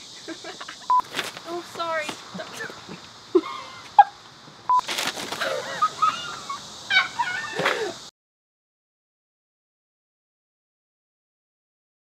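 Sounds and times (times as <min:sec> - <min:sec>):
people giggling: 0:00.0 - 0:01.0, 0:02.4 - 0:04.2, 0:05.4 - 0:08.0.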